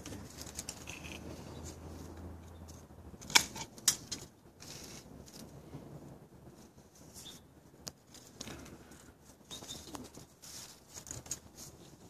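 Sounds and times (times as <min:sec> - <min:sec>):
rustling of leaves and branches: 0:00.0 - 0:12.0.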